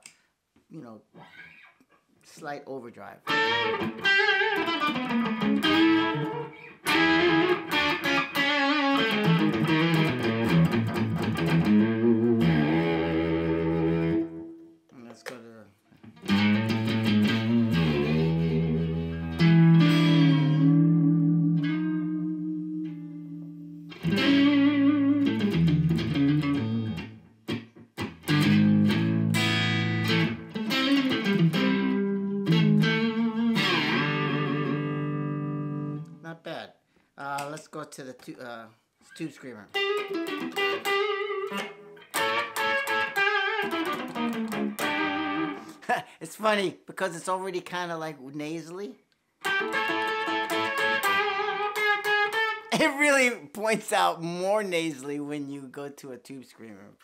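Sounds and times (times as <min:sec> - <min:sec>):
overdriven electric guitar playing: 0:03.2 - 0:14.7, 0:16.0 - 0:36.2, 0:39.7 - 0:45.8, 0:49.4 - 0:53.4.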